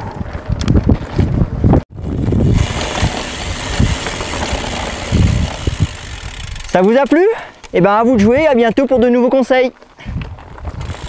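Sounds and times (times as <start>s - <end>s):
wind buffeting microphone: 0.0s - 6.8s, 10.0s - 11.0s.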